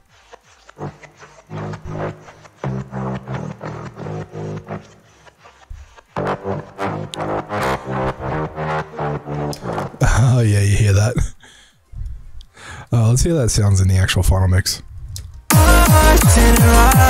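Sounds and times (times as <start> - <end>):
chopped synth bass pulses: 0.8 - 10.2, 15.5 - 17.0.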